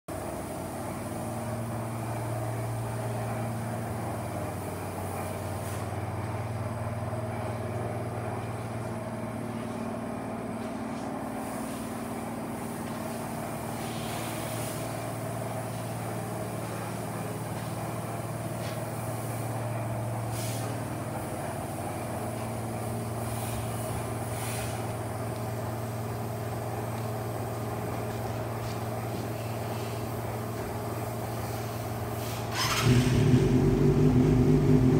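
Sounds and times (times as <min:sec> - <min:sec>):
motorcycle engine running steadily: 0:32.6 - 0:34.9.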